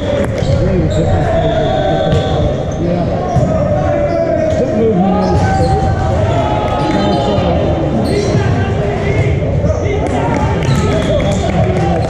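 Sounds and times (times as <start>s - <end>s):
players' voices echoing: 0.0s - 12.0s.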